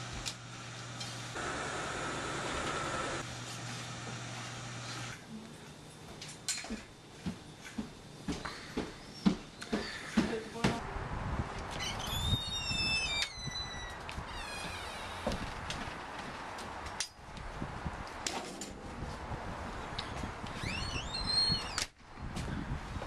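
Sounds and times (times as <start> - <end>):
outdoor background noise: 0.0 - 23.0.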